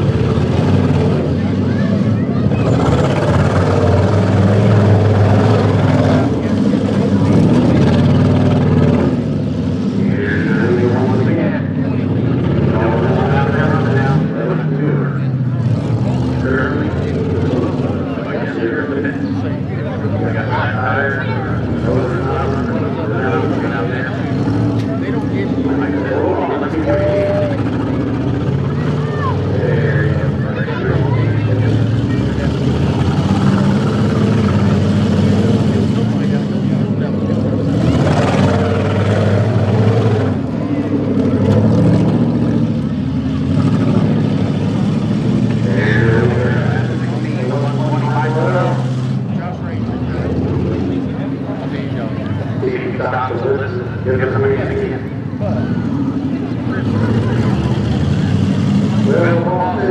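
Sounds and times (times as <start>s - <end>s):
car engines revving: 0.0s - 59.9s
voices: 0.0s - 59.9s.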